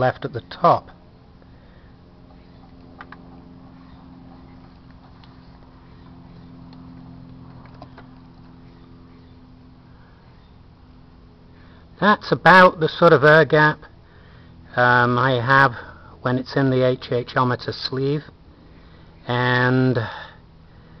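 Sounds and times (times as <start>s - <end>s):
low mechanical hum: 0.0s - 21.0s.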